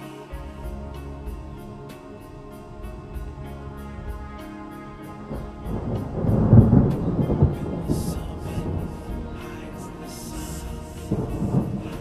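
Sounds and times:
calm instrumental meditation music: 0:00.0 - 0:12.0
deep loud rumble: 0:00.4 - 0:12.0.

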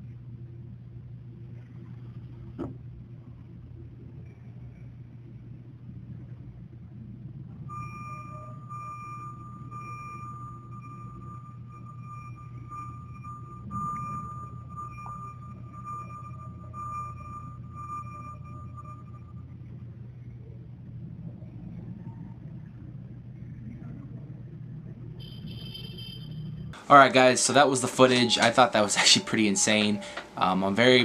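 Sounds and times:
low hum: 0:00.0 - 0:31.0
high electronic tone: 0:07.7 - 0:19.6.

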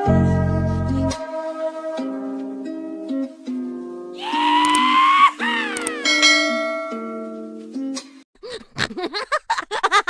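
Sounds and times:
light plucked music: 0:00.0 - 0:04.2, 0:05.9 - 0:08.2
bell ding: 0:06.0 - 0:07.3.

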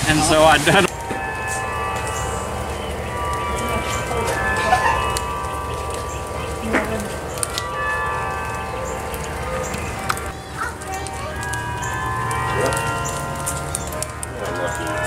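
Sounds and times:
carillon bells ringing: 0:00.0 - 0:15.0
soft hiss of rain: 0:00.0 - 0:15.0.

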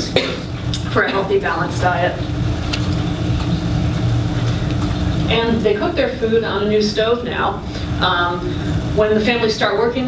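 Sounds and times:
faint constant hum: 0:00.0 - 0:10.0.

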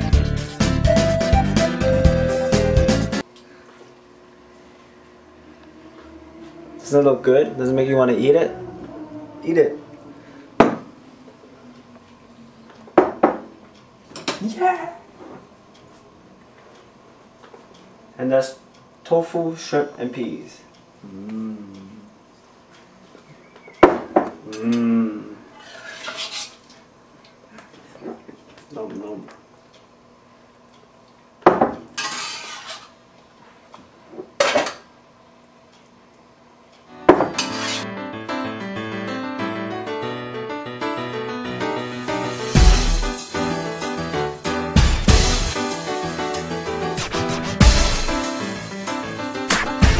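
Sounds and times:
metal spatula scraping a wok: 0:25.6 - 0:26.6, 0:32.0 - 0:33.0, 0:37.3 - 0:37.9
metal cookware clanking: 0:32.0 - 0:32.9, 0:37.1 - 0:37.8.

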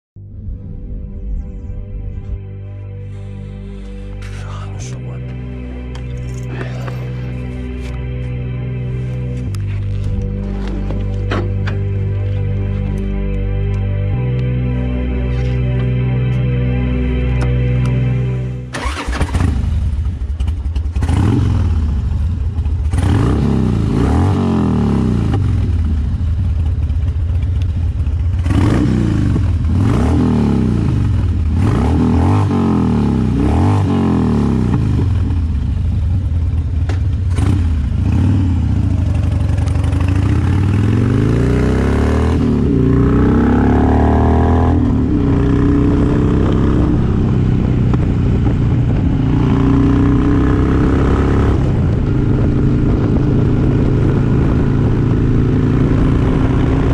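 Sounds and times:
motorcycle engine shifting gears: 0:09.2 - 0:13.1, 0:18.7 - 0:56.9.

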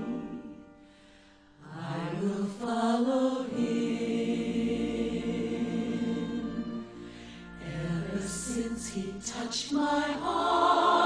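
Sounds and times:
voices singing a chant: 0:01.6 - 0:06.9, 0:07.6 - 0:11.0.

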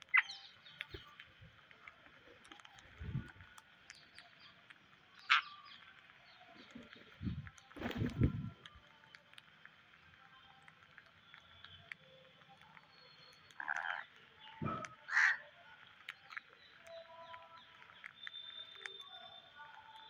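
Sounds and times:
beaks clicking on grains: 0:00.0 - 0:20.0
parakeet harsh squawks: 0:15.0 - 0:15.4.

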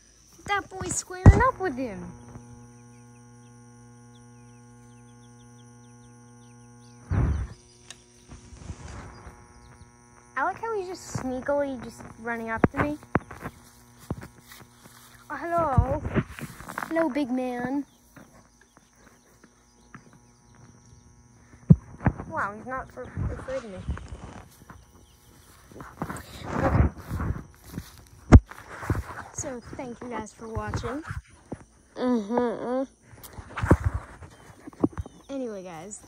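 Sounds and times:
faint chirps: 0:00.0 - 0:36.0
insects droning: 0:00.0 - 0:36.0
steady low hum: 0:00.0 - 0:36.0
loud rustle: 0:07.0 - 0:18.5.

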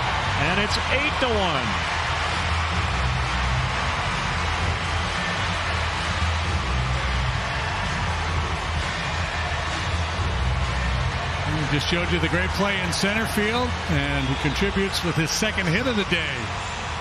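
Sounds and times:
crowd cheering: 0:00.0 - 0:17.0
music: 0:00.0 - 0:17.0.

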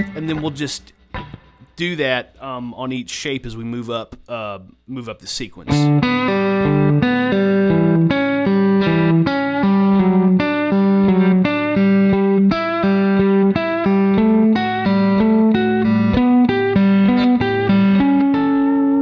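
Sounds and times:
clean electric guitar: 0:00.0 - 0:01.8, 0:05.7 - 0:19.0.

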